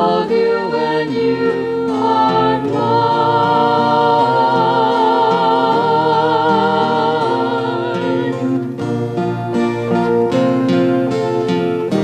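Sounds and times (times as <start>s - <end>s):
person singing: 0.0s - 8.7s
guitar: 0.0s - 12.0s
keyboard: 0.0s - 12.0s.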